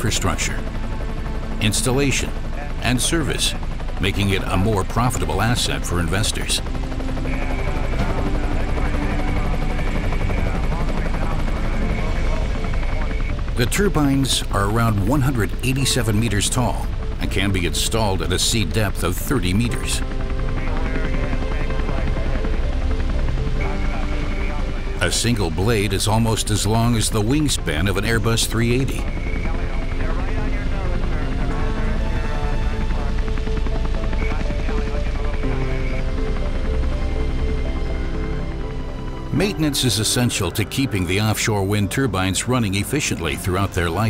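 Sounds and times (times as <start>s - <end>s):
helicopter rotor and engine noise: 0.0s - 44.0s.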